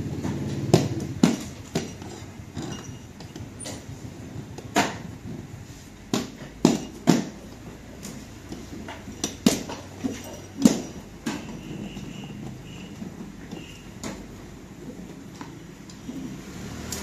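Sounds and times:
sharp knocks and clacks: 0.0 - 16.2.

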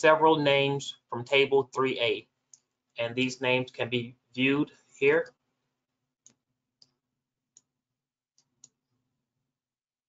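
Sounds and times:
computer mouse clicks: 6.2 - 7.7.

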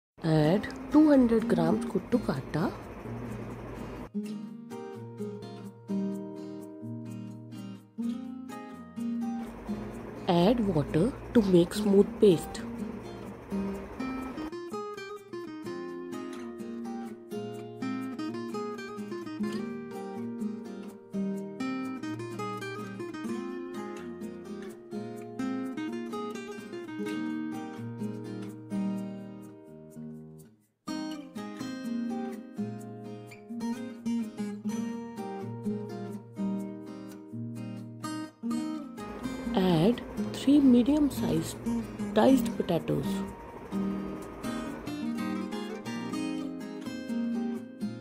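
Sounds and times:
plucked acoustic guitar music: 0.2 - 48.0.

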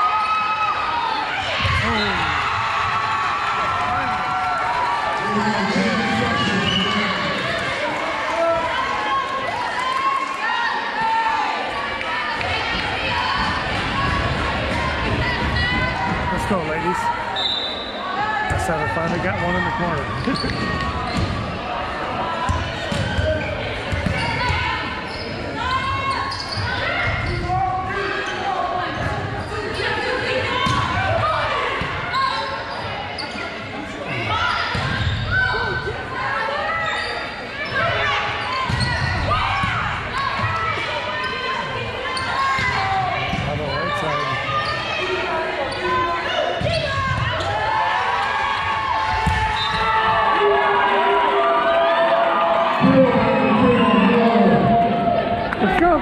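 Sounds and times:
spectators' voices echoing: 0.0 - 56.0.

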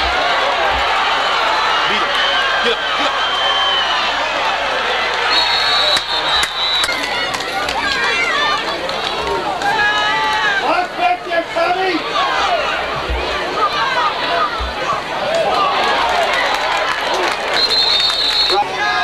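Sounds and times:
crowd shouting: 0.0 - 19.0
high whistle: 5.3 - 7.1, 17.6 - 18.6.

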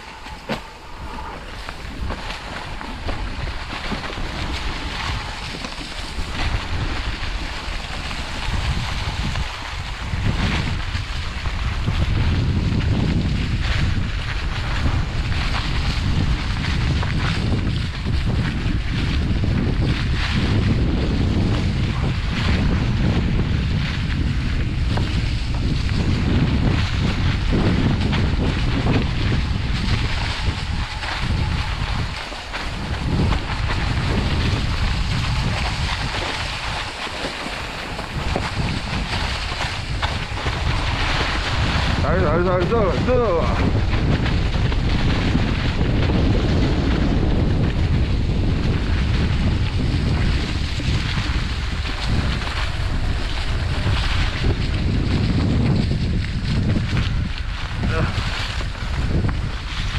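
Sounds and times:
bike tyres rolling on dirt trail: 0.0 - 59.9
wind buffeting microphone: 0.0 - 59.9.

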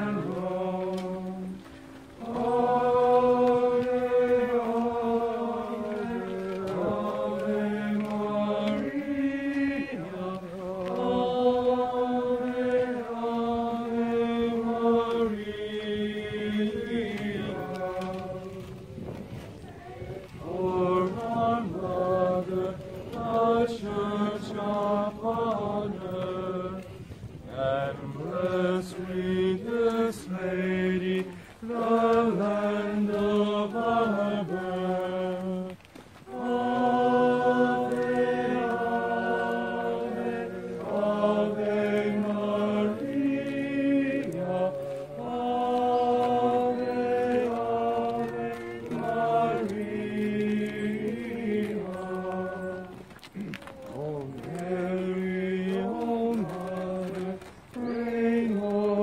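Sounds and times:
group singing a hymn: 0.0 - 59.0.

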